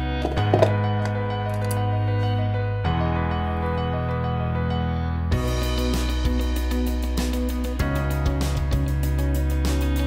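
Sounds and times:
soft keyboard chords: 0.0 - 10.0.

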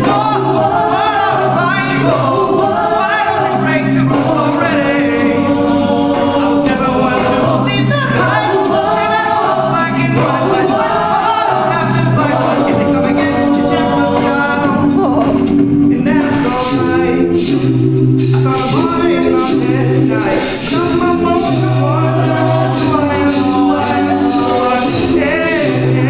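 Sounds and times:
male lead voice singing: 0.0 - 5.8, 6.4 - 17.4, 18.3 - 26.0
layered backing vocals: 0.0 - 26.0
sung bass line: 0.0 - 26.0.

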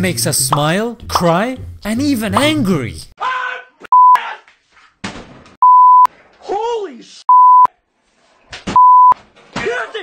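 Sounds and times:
man yelling: 3.2 - 4.5
censor bleeps: 3.9 - 4.2, 5.6 - 6.1, 7.3 - 7.7, 8.8 - 9.2.

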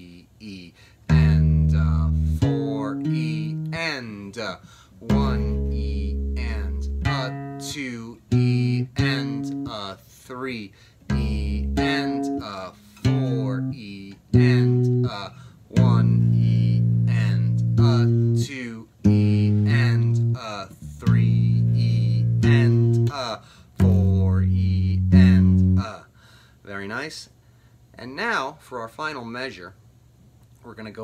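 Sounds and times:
man counting aloud: 0.0 - 27.4, 30.6 - 31.0
electric bass riff: 1.1 - 3.9, 5.0 - 9.8, 11.0 - 23.2, 23.8 - 25.9.

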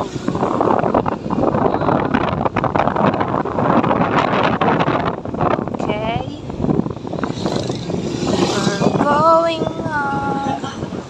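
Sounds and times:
motorcycle engines running: 0.0 - 11.0
people's voices: 8.0 - 11.0.

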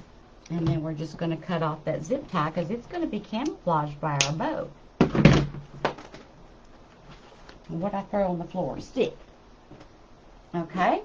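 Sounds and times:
faint rustling: 5.7 - 7.8.

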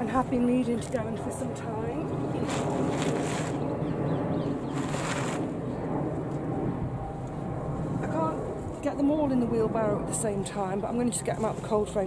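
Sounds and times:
wind buffeting microphone: 0.0 - 12.0
brief rustling surges: 2.4 - 3.6, 4.7 - 5.5.

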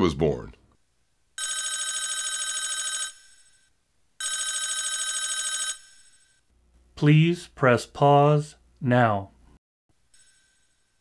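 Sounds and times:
telephone ringing with warble: 1.4 - 6.4, 10.2 - 11.0.

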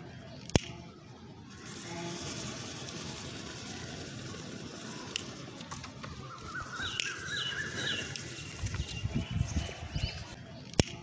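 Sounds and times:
birds calling: 5.7 - 10.8
sharp click: 6.9 - 7.2, 10.7 - 11.0.

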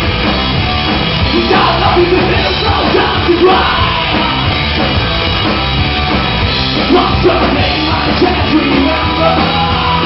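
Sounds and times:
drums: 0.0 - 10.0
electric guitars: 0.0 - 10.0
lead singer's vocals: 1.3 - 4.5, 6.9 - 10.0.

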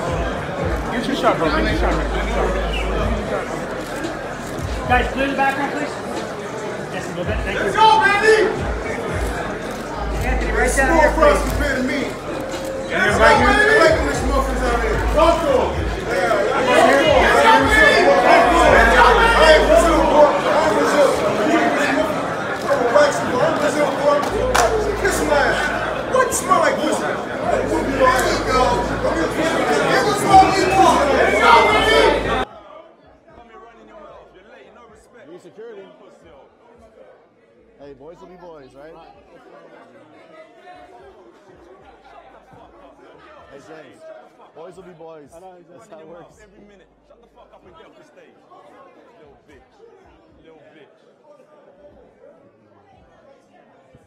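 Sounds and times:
chatter of people: 0.0 - 54.0
men talking over one another: 0.1 - 32.5
men arguing loudly: 7.4 - 9.1, 9.7 - 32.5.

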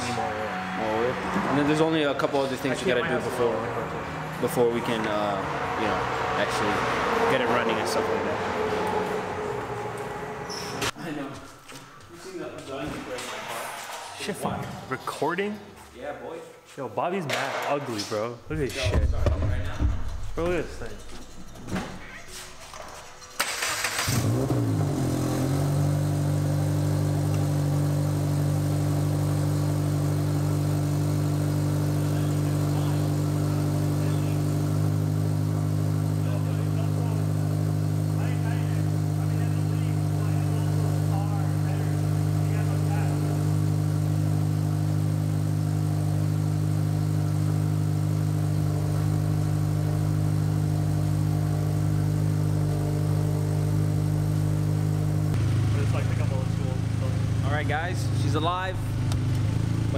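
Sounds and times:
car engine idling: 18.5 - 59.9.

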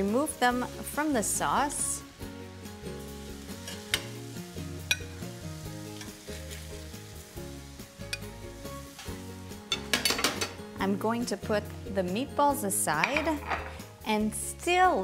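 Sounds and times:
sauce sizzling in a pan: 0.0 - 15.0
soft background music: 0.0 - 15.0
metal spoon clinking on pan: 4.9 - 5.2, 8.1 - 8.3, 9.7 - 10.6, 13.0 - 13.8.

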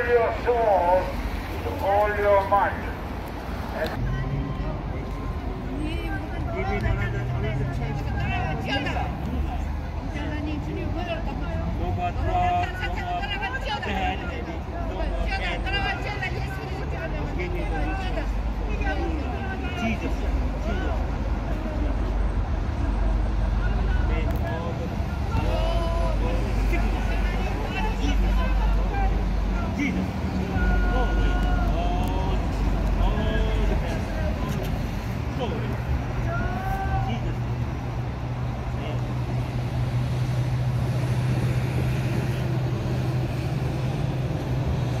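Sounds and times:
street traffic rumble: 0.0 - 45.0.

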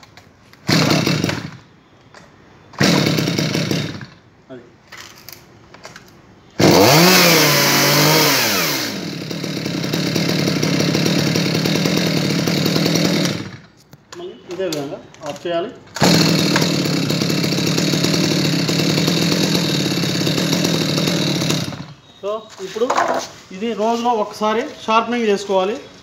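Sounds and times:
pull cord bursts: 0.6 - 1.6, 2.8 - 4.2, 6.6 - 13.7, 15.9 - 22.0
chainsaw engine running: 0.7 - 1.6, 2.8 - 4.2, 6.6 - 13.7, 16.0 - 22.0.

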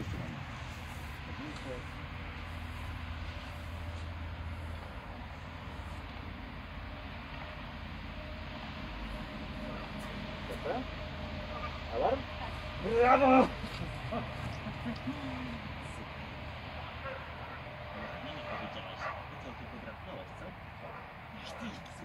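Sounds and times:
dog barking: 9.7 - 10.9, 11.5 - 12.3, 17.0 - 19.4, 20.8 - 21.8.

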